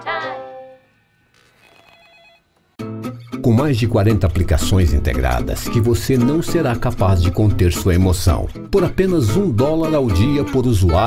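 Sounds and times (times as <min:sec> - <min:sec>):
warbling electronic ring: 0:00.5 - 0:02.5.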